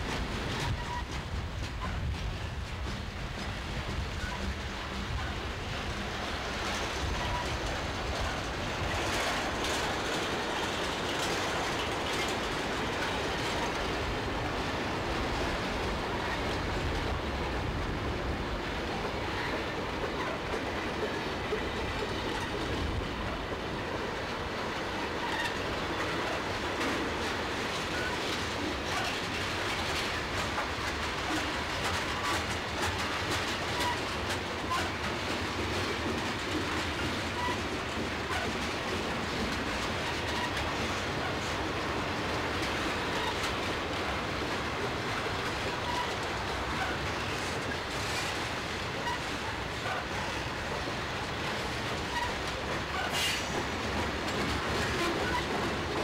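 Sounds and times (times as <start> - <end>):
train wheels rumbling on rail: 0.0 - 56.0
wheels clanking over rail joints: 0.0 - 56.0.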